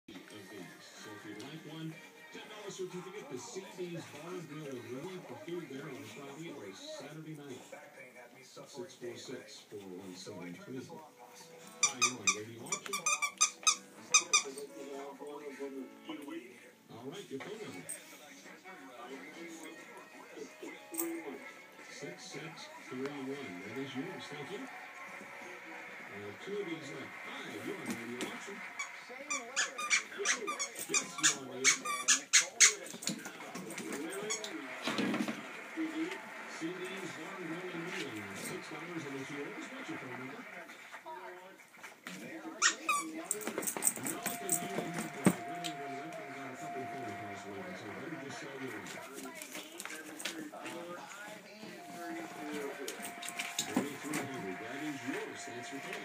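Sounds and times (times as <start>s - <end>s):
dog toy squeaking: 11.8s - 14.6s, 29.3s - 32.8s, 42.6s - 43.2s.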